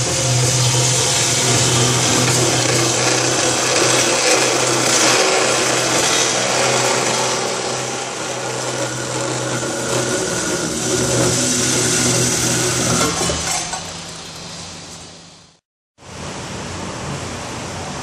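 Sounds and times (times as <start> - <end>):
saw blade cutting metal: 0.0 - 15.1
saw motor hum: 0.0 - 15.3.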